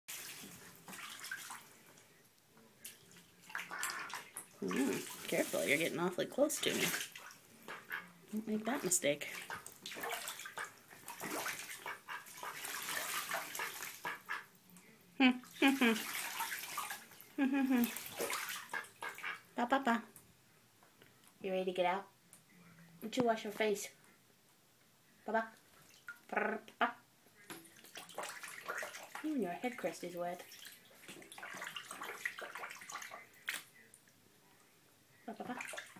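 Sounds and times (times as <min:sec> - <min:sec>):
duck splashing water: 0:00.1 - 0:02.1, 0:02.8 - 0:14.5, 0:15.5 - 0:19.6, 0:25.7 - 0:26.3, 0:27.4 - 0:34.0, 0:35.3 - 0:35.9
duck vocalizing: 0:03.7 - 0:05.1.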